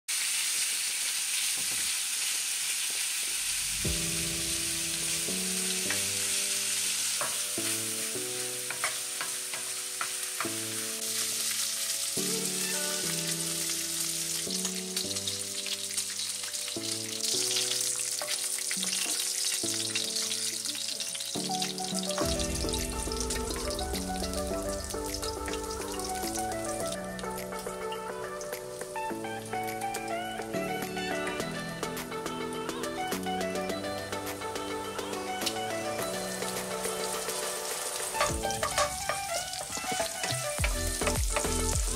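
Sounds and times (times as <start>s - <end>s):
pork sizzling in a pan: 0.1s - 41.9s
wooden spatula scraping: 37.4s - 41.5s.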